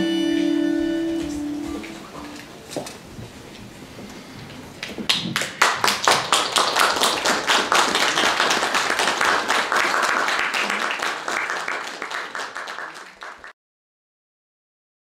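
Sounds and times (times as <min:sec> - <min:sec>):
audience applauding: 0:04.8 - 0:13.6.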